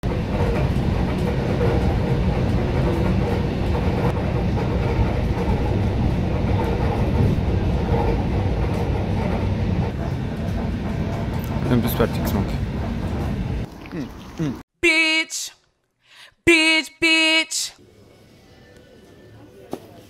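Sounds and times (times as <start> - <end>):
train rumble inside carriage: 0.0 - 13.7.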